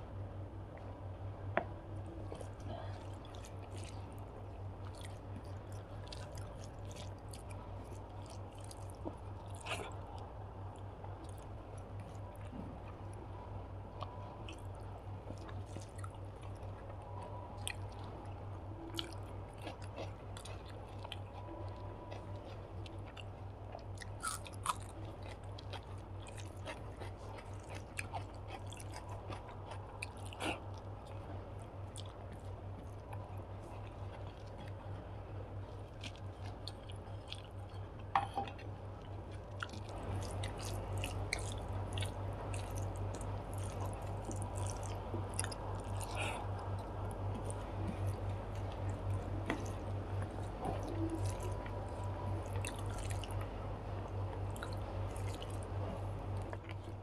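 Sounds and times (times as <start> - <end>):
steady low hum: 0.0 - 57.0
close chewing with soft crunches: 0.1 - 57.0.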